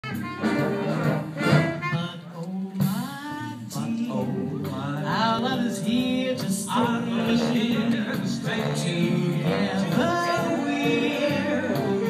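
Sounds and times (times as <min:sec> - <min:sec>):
band with brass playing: 0:00.0 - 0:03.1, 0:06.4 - 0:12.0
person singing: 0:01.7 - 0:12.0.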